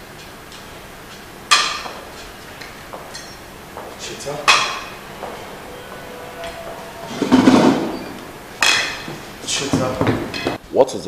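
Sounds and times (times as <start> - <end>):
chair moving: 1.9 - 10.5.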